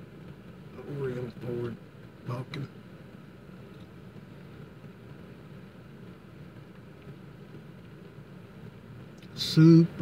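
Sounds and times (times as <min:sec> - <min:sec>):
car interior hum and hiss: 0:00.0 - 0:10.0.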